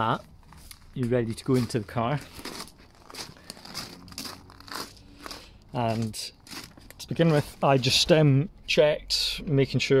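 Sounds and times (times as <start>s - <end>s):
footsteps on gravel: 0.0s - 8.4s.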